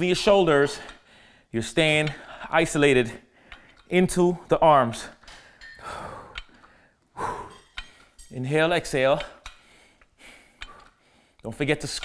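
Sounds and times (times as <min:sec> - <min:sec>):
man exhaling: 0:05.8 - 0:07.6.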